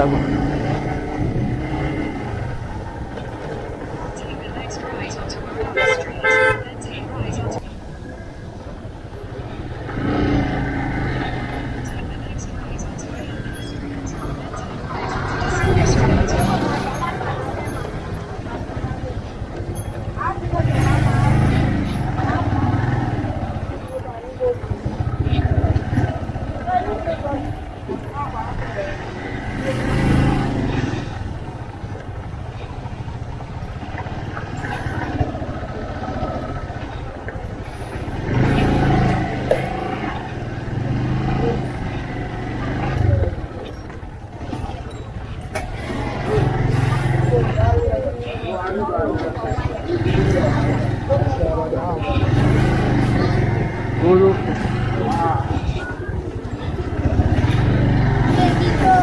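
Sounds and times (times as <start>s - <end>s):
motorcycle engine rumbling: 0.0s - 59.0s
people's voices: 0.0s - 59.0s.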